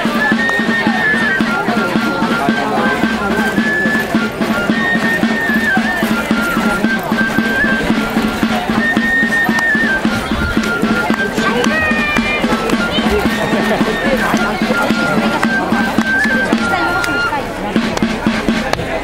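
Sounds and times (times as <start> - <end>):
folk dance music: 0.0 - 19.0
people's voices: 0.0 - 19.0.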